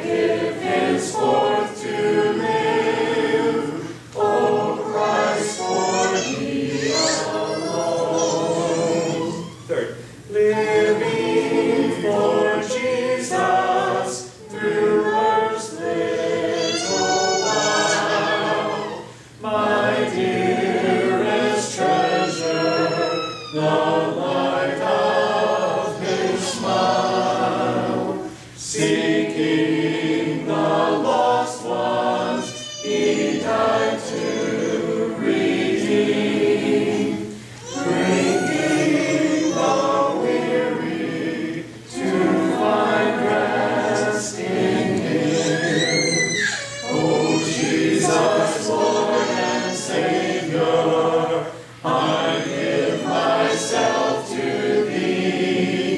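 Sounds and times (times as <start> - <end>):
congregation singing a hymn: 0.0 - 55.9
song leader's voice: 0.0 - 55.9.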